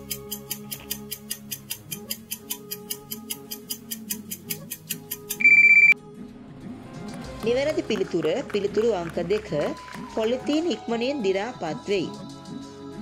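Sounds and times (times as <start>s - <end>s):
rapid clock ticking: 0.0s - 6.0s
soft background music: 0.0s - 13.0s
loud electronic beep: 5.4s - 6.0s.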